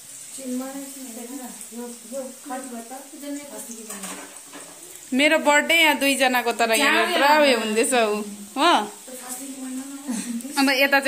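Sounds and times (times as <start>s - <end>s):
faint high hiss: 0.0s - 11.0s.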